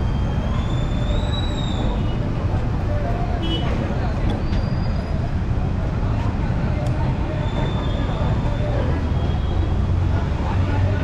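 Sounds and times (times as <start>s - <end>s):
city road traffic rumble: 0.0s - 11.0s.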